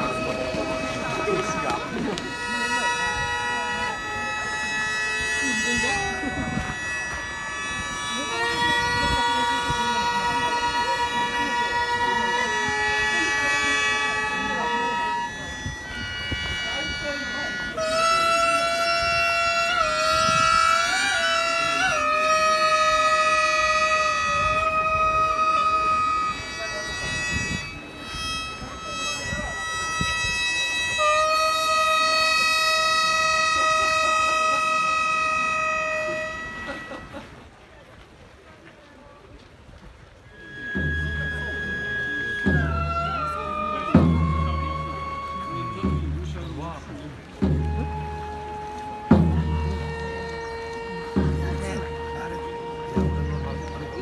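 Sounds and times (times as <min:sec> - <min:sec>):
reed and wind instruments held tones: 0:00.0 - 0:54.0.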